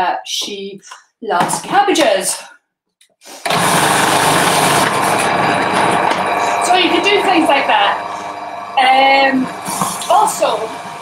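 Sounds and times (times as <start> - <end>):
food processor motor running: 3.5 - 11.0.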